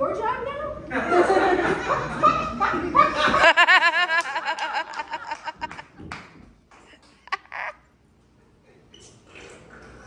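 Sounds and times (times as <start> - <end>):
person laughing: 2.4 - 5.8, 7.2 - 7.9.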